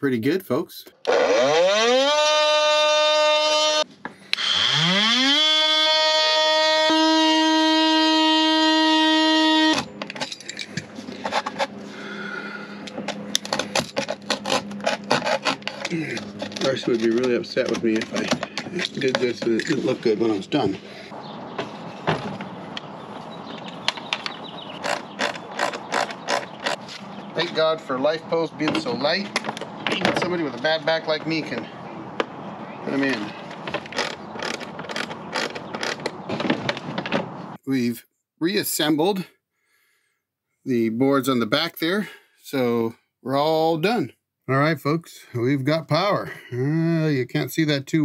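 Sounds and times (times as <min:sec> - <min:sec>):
oscillating multi-tool whine: 0:01.0 - 0:20.2
tool scraping wood: 0:01.1 - 0:12.1, 0:12.8 - 0:22.6, 0:23.6 - 0:27.6, 0:33.0 - 0:37.6.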